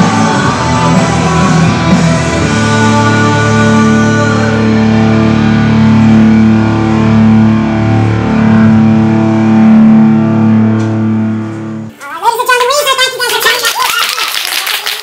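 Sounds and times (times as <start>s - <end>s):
distorted electric guitar chord: 0.0s - 11.9s.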